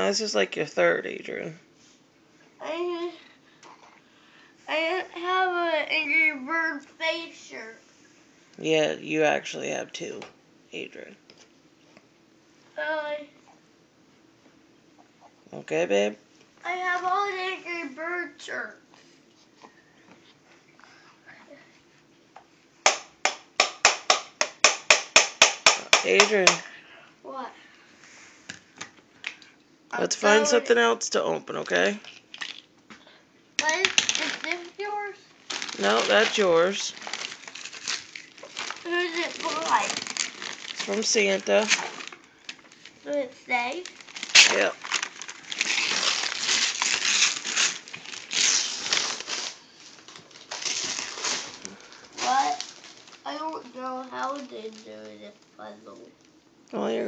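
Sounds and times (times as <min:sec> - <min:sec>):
rapid sharp knocks: 0:22.8 - 0:26.6
wrapping paper tearing and crinkling: 0:33.6 - 0:55.5.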